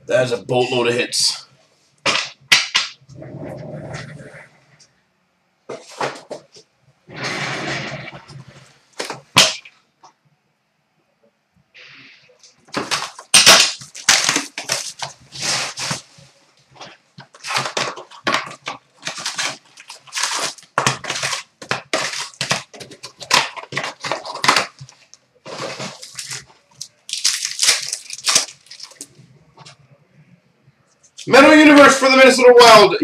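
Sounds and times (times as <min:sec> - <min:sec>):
plastic wrappers crinkling and tearing: 0:12.4 - 0:29.8.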